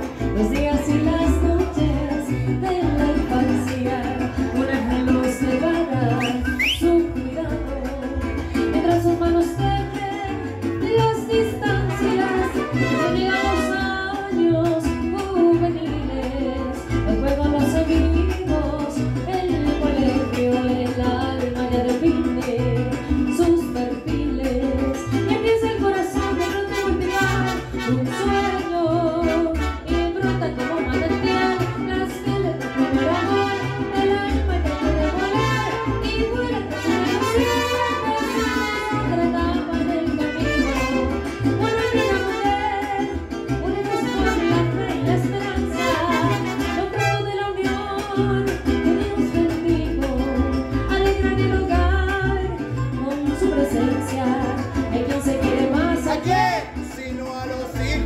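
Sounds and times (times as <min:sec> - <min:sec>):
mariachi band playing: 0:00.0 - 0:58.0.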